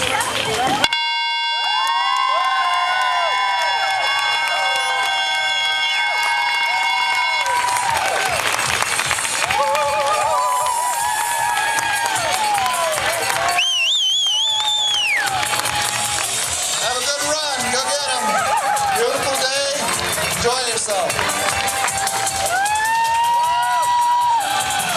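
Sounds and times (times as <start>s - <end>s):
crowd clapping: 0.0s - 24.9s
crowd cheering and whooping: 0.5s - 24.9s
air horn blast: 0.8s - 8.0s.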